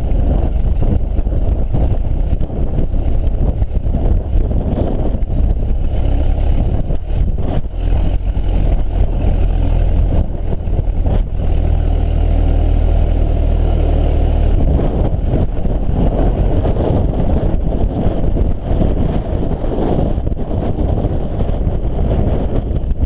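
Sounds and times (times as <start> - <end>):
engine rumbling: 0.0 - 23.0
wind buffeting microphone: 0.0 - 23.0.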